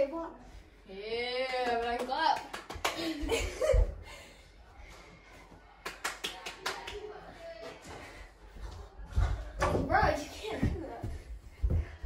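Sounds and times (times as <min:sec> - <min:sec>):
boys' voices: 0:09.3 - 0:11.4.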